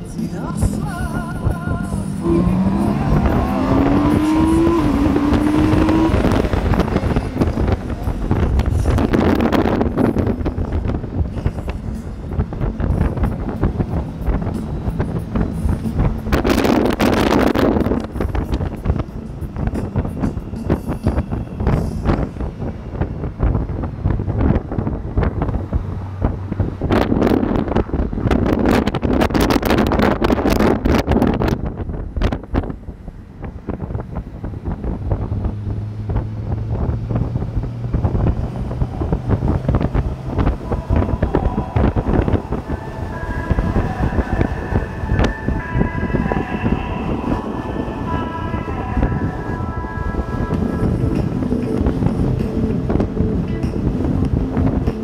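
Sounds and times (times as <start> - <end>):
faint music with held notes: 0.0 - 27.1, 37.4 - 55.0
low engine drone: 0.0 - 55.0
wind buffeting microphone: 0.0 - 55.0.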